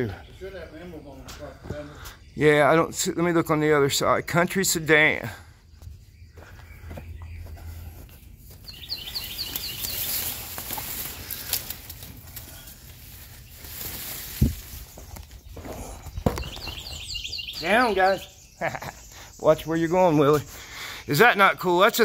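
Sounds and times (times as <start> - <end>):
footsteps: 5.8 - 16.9
leafy branches brushing: 8.9 - 15.6
high chirps: 16.4 - 20.3.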